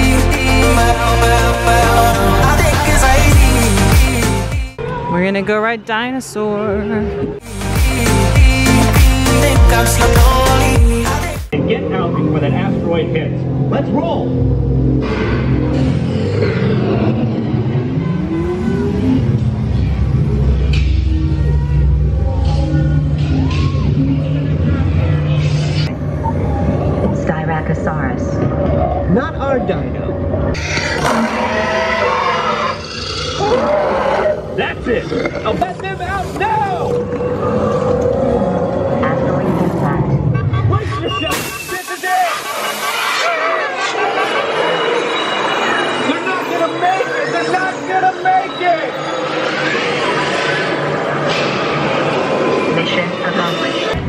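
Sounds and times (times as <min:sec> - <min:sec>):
rising engine-like whines: 0:00.8 - 0:04.5, 0:11.6 - 0:30.6, 0:43.3 - 0:54.0
loud low rumble: 0:00.8 - 0:04.8
dinosaur roars: 0:02.2 - 0:03.6, 0:15.8 - 0:20.7, 0:30.2 - 0:35.7, 0:36.5 - 0:39.8.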